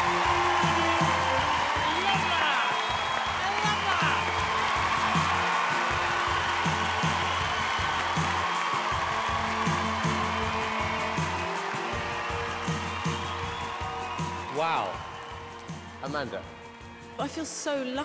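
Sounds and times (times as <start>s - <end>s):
audience applauding: 0.0s - 17.4s
music with steady beat: 0.0s - 18.0s.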